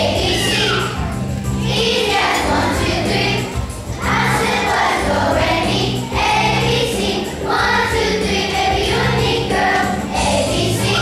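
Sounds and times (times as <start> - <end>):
children's choir singing: 0.0 - 11.0
musical accompaniment: 0.0 - 11.0.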